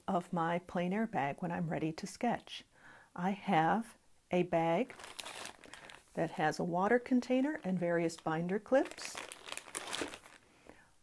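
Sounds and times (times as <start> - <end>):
plastic bag crinkling: 4.8 - 6.2, 7.4 - 10.6.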